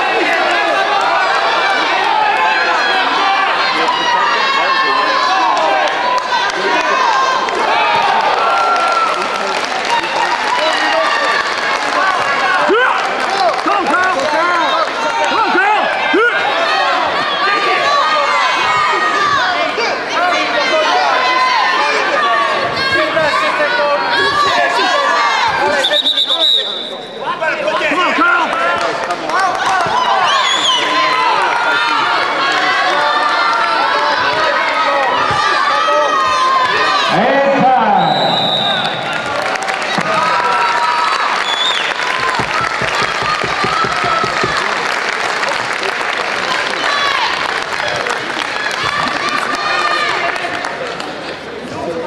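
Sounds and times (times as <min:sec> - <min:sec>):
crowd shouting and cheering: 0:00.0 - 0:52.0.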